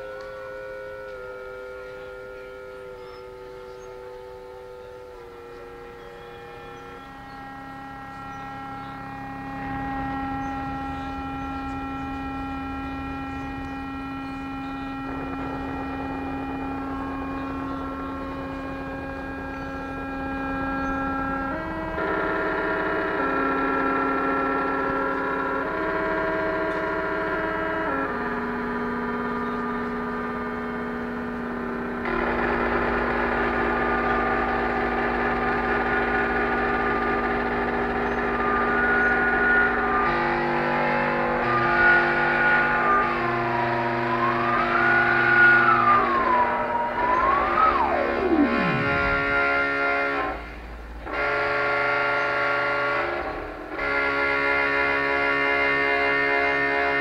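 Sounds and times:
deep low tone: 0:00.0 - 0:51.2
electronic synthesizer drones: 0:00.0 - 0:57.0.

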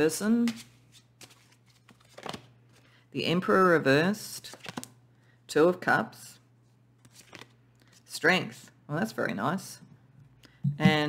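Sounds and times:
low steady hum: 0:05.0 - 0:11.0.

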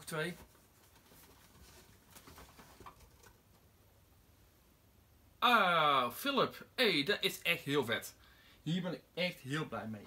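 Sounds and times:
faint rustles: 0:00.0 - 0:03.6.

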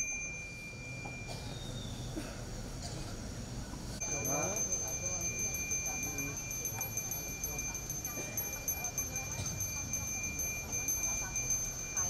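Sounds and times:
hand bell ringing continuously: 0:00.0 - 0:02.0, 0:04.0 - 0:12.0.

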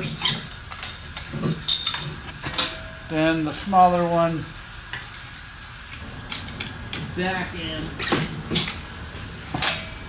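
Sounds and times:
metal parts knocking and scraping: 0:00.0 - 0:03.0, 0:08.0 - 0:08.8.

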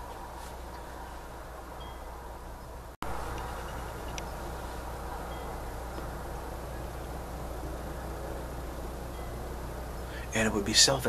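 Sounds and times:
background hum and hiss: 0:00.0 - 0:11.0
faint high tinkles: 0:01.8 - 0:02.2, 0:05.2 - 0:05.7, 0:09.1 - 0:09.5.

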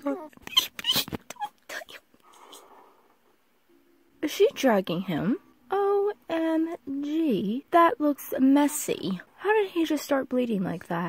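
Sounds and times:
soft breathy noise: 0:02.2 - 0:03.5.

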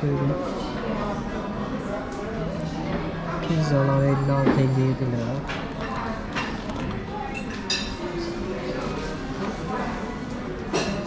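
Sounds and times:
diners talking indistinctly: 0:00.0 - 0:11.0
tableware clink: 0:03.5 - 0:06.7, 0:07.3 - 0:08.2, 0:10.6 - 0:11.0.

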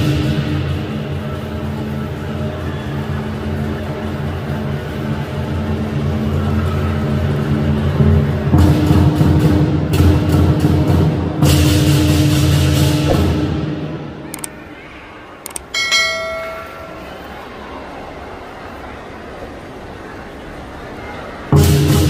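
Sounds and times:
large drum beating: 0:08.0 - 0:14.1
cymbals clashing: 0:15.7 - 0:17.3.

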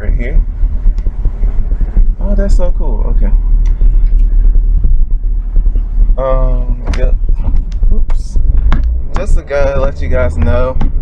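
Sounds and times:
engine and road noise in car: 0:00.0 - 0:11.0.

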